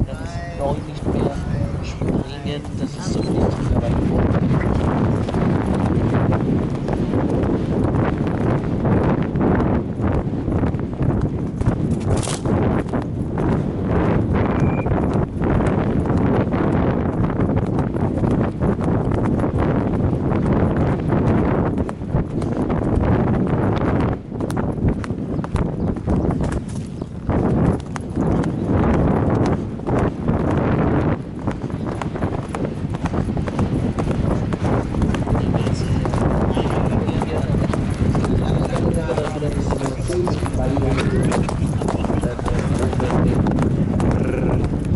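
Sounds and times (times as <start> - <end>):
horse hoofbeats on grass: 0.0 - 44.9
steady low rumble: 0.0 - 44.9.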